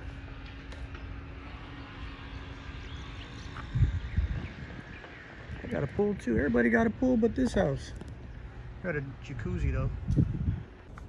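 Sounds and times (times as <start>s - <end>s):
faint steady hum: 0.0s - 11.0s
outdoor background rumble: 0.0s - 11.0s.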